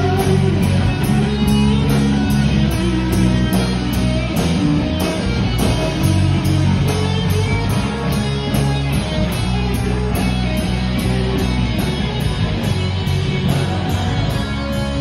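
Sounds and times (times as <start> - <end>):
rock band playing: 0.0 - 15.0.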